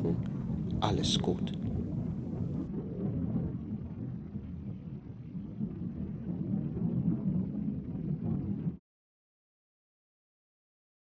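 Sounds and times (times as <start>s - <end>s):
wind: 0.0s - 6.5s
waves on choppy water: 0.0s - 8.8s.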